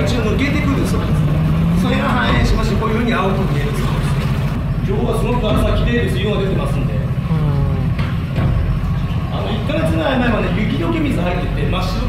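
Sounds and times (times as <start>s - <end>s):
boat motor humming: 0.0s - 11.8s.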